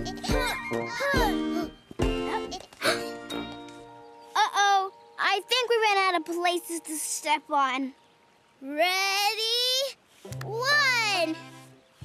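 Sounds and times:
cartoon background music: 0.0 - 8.0, 10.3 - 12.0.

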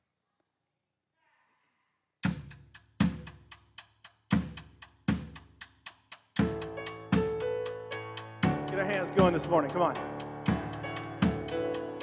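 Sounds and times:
heavy bass drum strokes: 8.4 - 11.9.

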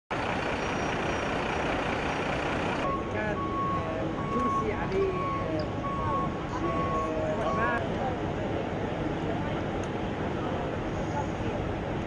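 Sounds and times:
large vehicle engine running: 0.1 - 12.0
electronic warning beeps: 0.4 - 7.8
people's voices: 2.8 - 12.0.

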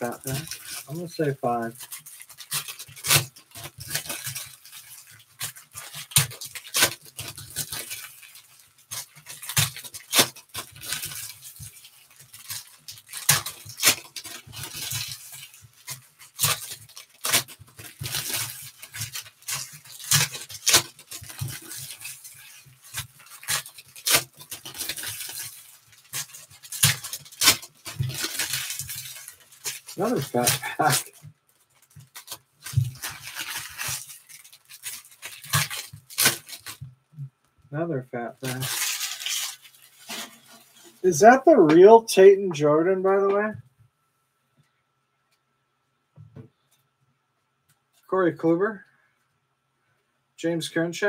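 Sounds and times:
foil wrappers tearing and crinkling: 0.0 - 36.9, 38.2 - 41.9.

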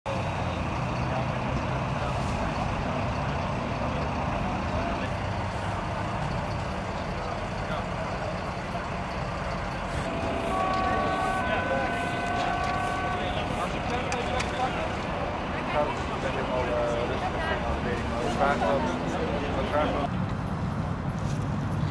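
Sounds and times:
indistinct voices: 0.1 - 20.1
motorway traffic passing: 0.1 - 21.9
steady multi-pitch tone: 9.6 - 15.6.

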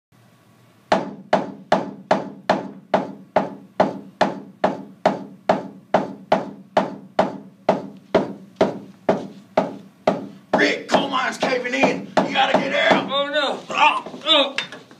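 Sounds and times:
tool knocking on hard surface: 0.9 - 13.2.

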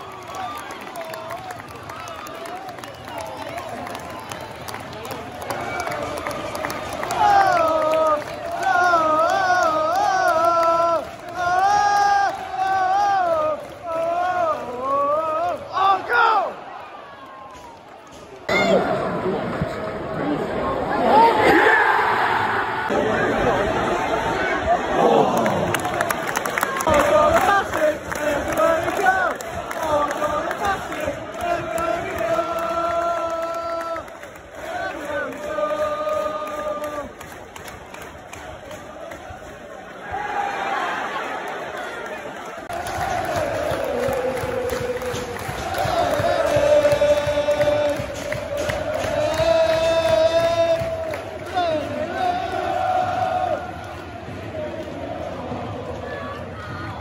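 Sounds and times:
crowd shouting and cheering: 0.0 - 57.0
fans chanting: 5.7 - 16.7, 20.9 - 37.5, 38.3 - 57.0.

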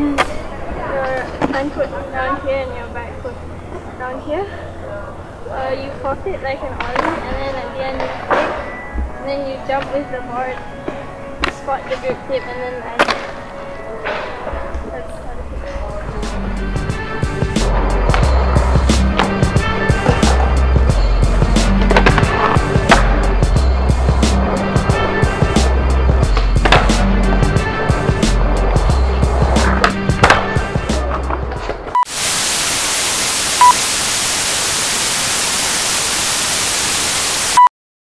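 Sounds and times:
skateboard wheels rolling: 6.6 - 8.7, 17.0 - 32.0
background music with bass line: 15.9 - 31.9
loud static hiss: 32.0 - 37.7
short beeps: 33.5 - 34.0.

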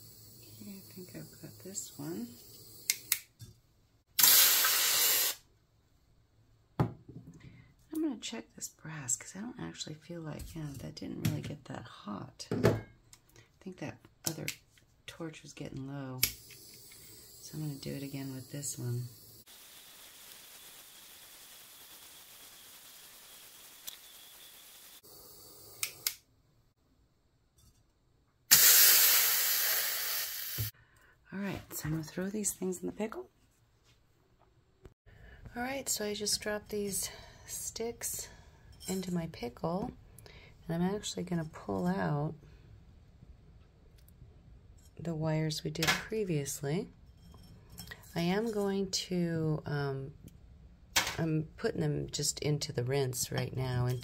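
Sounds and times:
hot metal hissing in quench bath: 0.0 - 3.1, 4.2 - 5.4, 16.3 - 26.0, 28.5 - 30.7
click: 2.9 - 3.3, 25.8 - 26.2.

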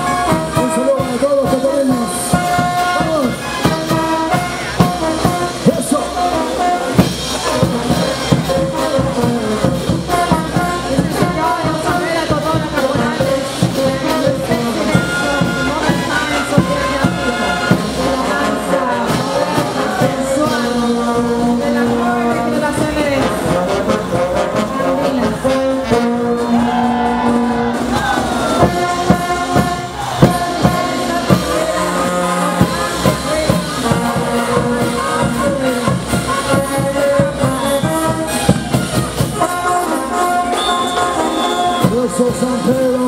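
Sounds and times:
brass band playing: 0.0 - 43.0.

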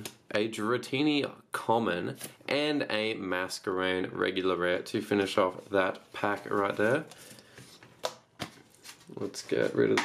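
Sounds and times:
cards rustling in hands: 5.6 - 10.0.

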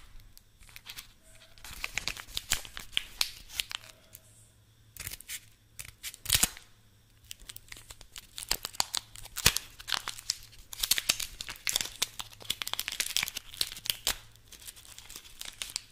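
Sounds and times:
card tearing and crinkling: 0.6 - 4.0, 5.0 - 6.6, 7.3 - 15.9.

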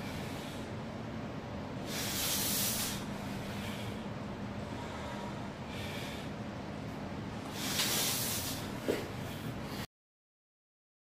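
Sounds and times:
man's hissing breaths: 0.0 - 0.8, 1.8 - 6.5, 7.4 - 9.9.

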